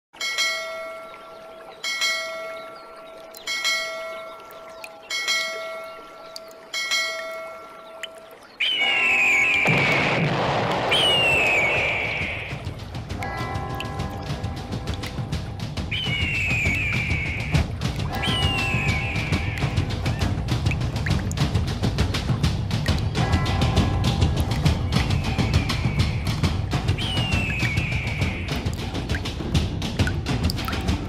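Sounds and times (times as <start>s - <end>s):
high falling cries: 0.3s - 20.9s, 23.1s - 28.8s
music: 11.2s - 31.0s
bell tolling: 13.2s - 15.5s.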